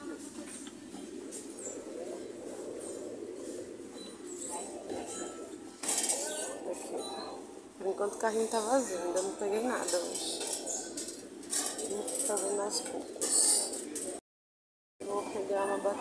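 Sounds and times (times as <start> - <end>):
faint voices: 0.0 - 14.2.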